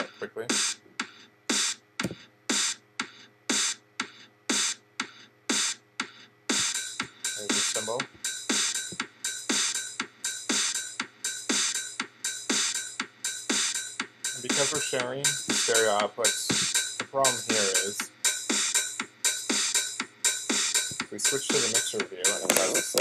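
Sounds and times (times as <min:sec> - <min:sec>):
drum machine kick and snare: 0:00.0 - 0:23.0.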